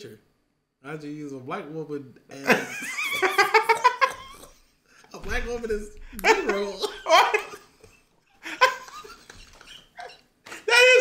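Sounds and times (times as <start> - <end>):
man laughing high-pitched: 6.2 - 7.6, 8.4 - 11.0.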